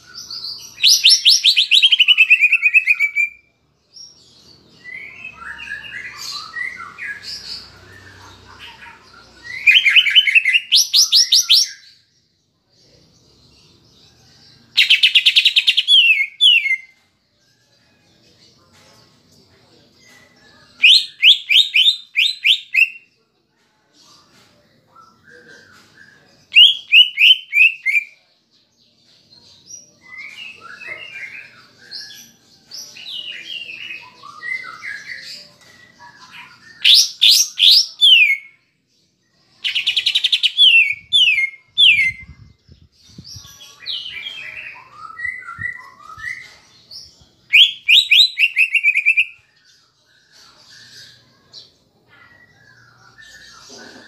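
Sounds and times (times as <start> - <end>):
bird singing whistled notes: 43.1 - 46.5, 47.5 - 49.6.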